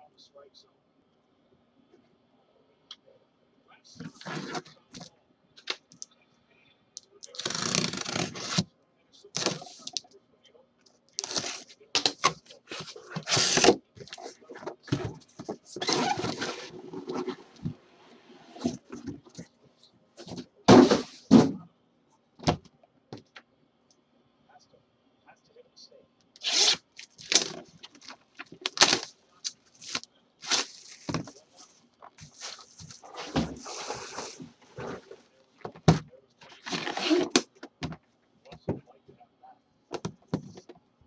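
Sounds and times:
cardboard tearing and scraping: 7.3s - 8.6s, 11.2s - 13.8s, 26.4s - 29.1s, 29.8s - 31.2s, 36.5s - 37.5s.

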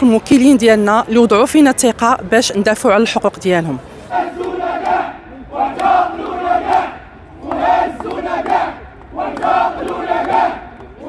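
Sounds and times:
crowd chanting in unison: 4.0s - 11.0s.

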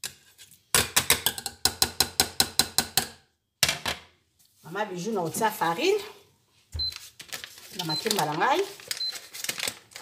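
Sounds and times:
paper bag rustling and crinkling: 6.8s - 10.0s.

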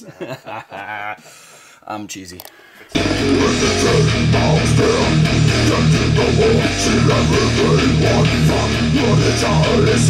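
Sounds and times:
electric bass fast low riff: 3.0s - 10.0s.

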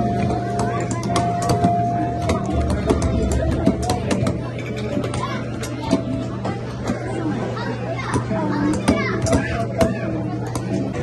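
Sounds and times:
children chattering: 0.0s - 11.0s
steady low hum: 1.6s - 6.7s.

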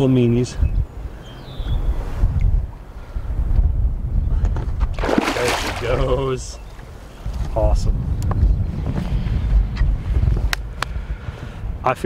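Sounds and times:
fish splashing at surface: 5.0s - 6.2s.

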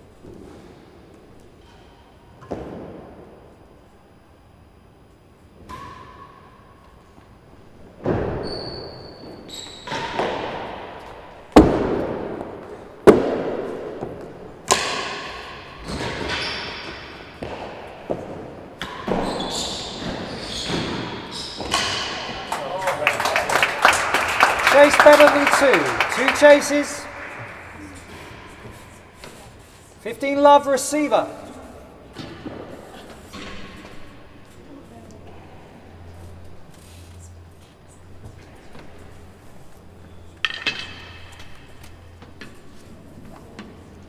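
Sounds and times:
rackets striking ball: 9.9s - 23.0s.

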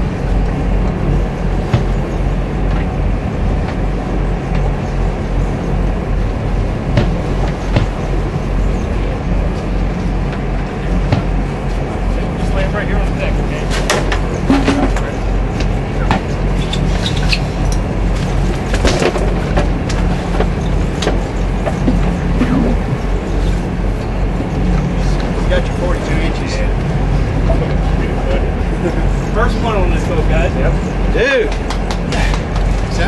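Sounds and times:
boat engine droning: 0.0s - 33.0s
indistinct voices: 0.0s - 33.0s.

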